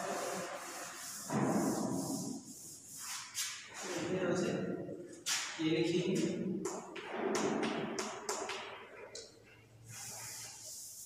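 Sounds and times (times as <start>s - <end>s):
chalk tapping on chalkboard: 0.0s - 3.6s
chalk scraping on chalkboard: 0.0s - 4.1s, 9.9s - 11.0s.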